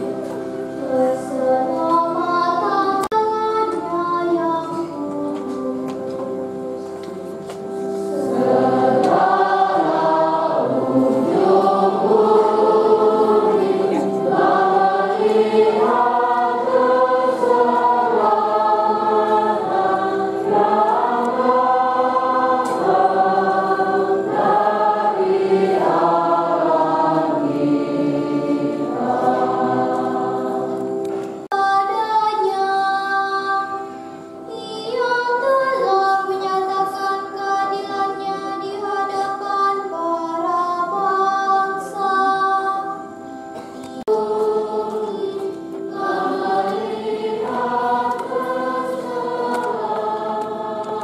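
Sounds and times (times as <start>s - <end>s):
held instrumental chords: 4.9s - 31.7s
choir singing: 8.0s - 31.2s, 44.0s - 51.0s.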